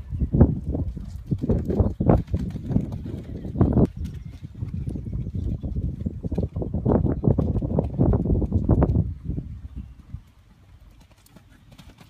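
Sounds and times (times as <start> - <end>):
pony hoofbeats on soft ground: 0.5 - 12.0.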